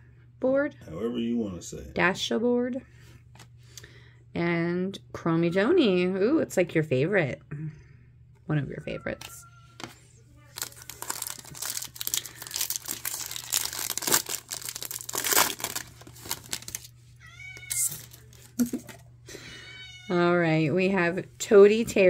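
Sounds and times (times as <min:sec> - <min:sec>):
foil wrapper crinkling: 0:10.5 - 0:18.9
cat meowing: 0:17.2 - 0:18.1, 0:19.5 - 0:20.3.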